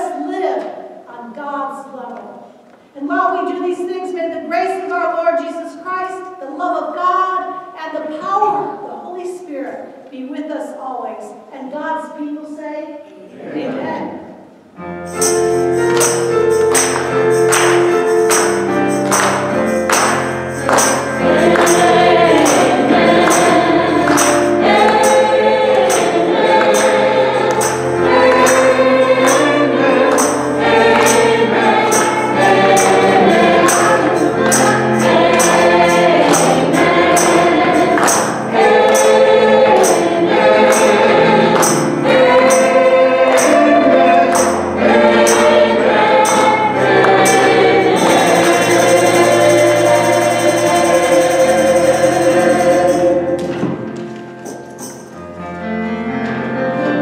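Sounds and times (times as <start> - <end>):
gospel choir singing: 13.1 - 53.9
tambourine beat: 15.0 - 53.7, 54.4 - 55.2.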